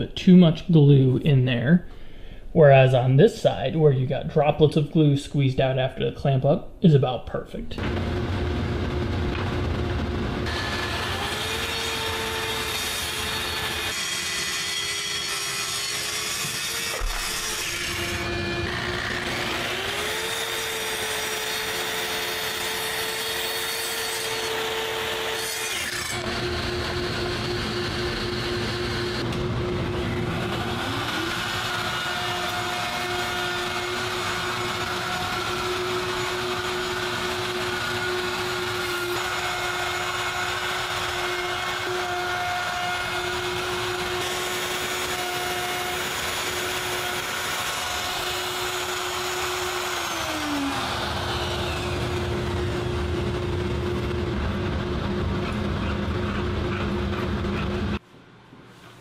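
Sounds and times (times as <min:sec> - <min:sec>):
power tool motor whining: 0:30.0 - 0:54.1.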